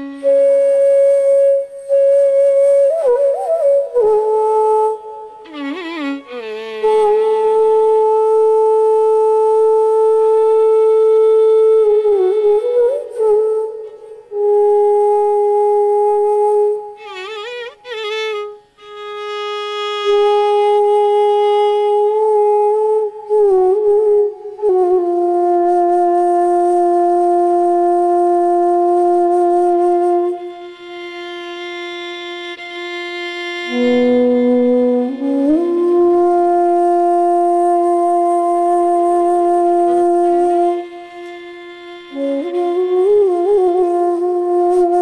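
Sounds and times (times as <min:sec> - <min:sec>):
bamboo flute long note: 0:00.0 - 0:45.0.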